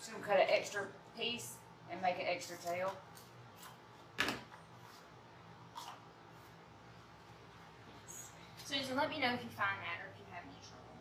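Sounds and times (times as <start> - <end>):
room fan humming: 0.0 - 11.0.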